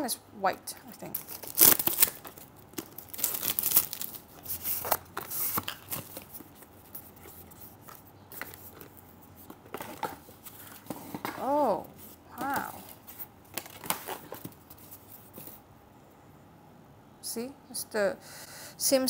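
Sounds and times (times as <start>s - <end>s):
cardboard packaging rustling and tearing: 1.0s - 15.6s.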